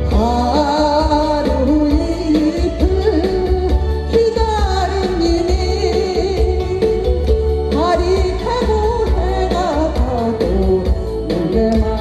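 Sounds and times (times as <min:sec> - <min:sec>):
music with steady bass beat: 0:00.0 - 0:12.0
woman singing with vibrato: 0:00.0 - 0:12.0.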